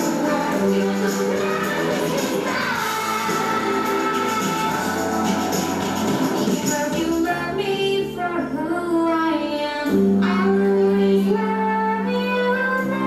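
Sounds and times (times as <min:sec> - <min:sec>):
children and woman singing: 0:00.0 - 0:05.5, 0:06.4 - 0:13.0
backing music: 0:00.0 - 0:08.7.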